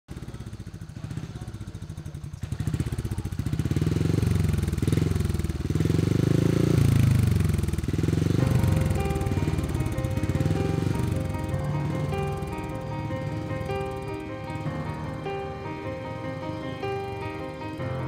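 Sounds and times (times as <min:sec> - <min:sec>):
motorcycle engine idling and revving: 0:00.1 - 0:18.0
music with steady notes: 0:08.4 - 0:18.0.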